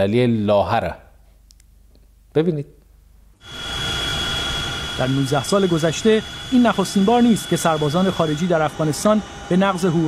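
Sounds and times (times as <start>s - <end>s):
helicopter engine noise: 3.4s - 10.0s
thin high whine: 3.4s - 10.0s.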